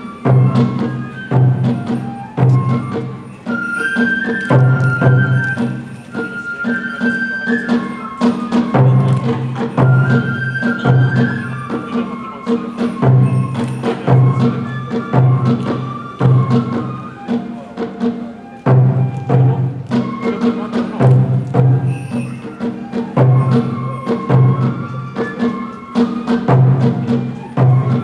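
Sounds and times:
bamboo flute melody: 0:00.0 - 0:28.0
sharp clacking percussion: 0:00.0 - 0:28.0
steady drum beat: 0:00.0 - 0:28.0.

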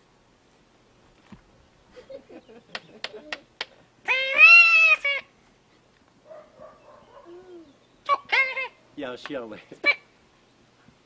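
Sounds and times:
high-pitched animal-like cry: 0:04.0 - 0:05.3, 0:07.2 - 0:08.8.

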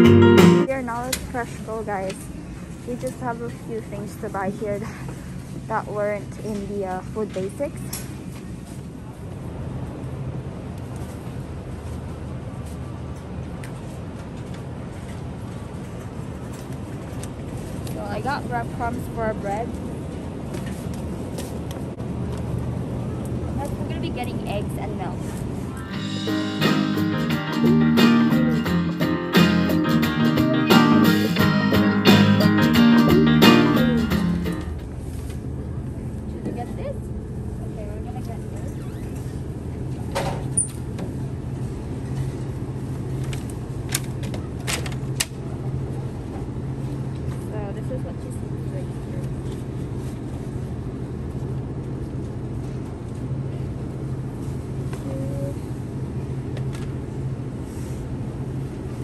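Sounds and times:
background music: 0:00.0 - 0:00.7, 0:25.8 - 0:34.8
refrigerated cases humming: 0:00.0 - 0:59.0.

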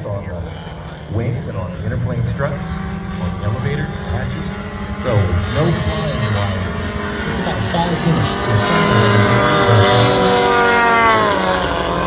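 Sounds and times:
model plane engine drone: 0:00.0 - 0:12.0.

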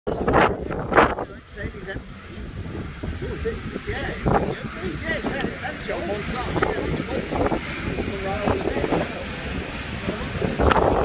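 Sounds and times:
faint voices: 0:00.1 - 0:11.0
wind on microphone: 0:00.1 - 0:11.0.

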